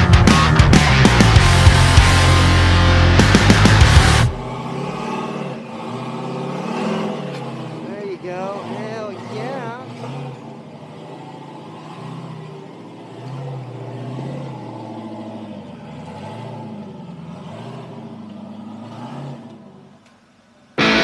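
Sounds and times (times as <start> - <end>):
buggy engine revving: 0.0 - 21.0.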